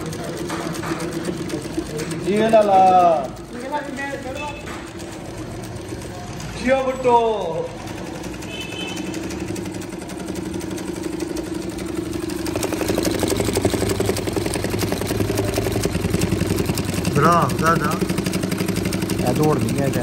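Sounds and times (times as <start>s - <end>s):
industrial sewing machine stitching: 0.0s - 20.0s.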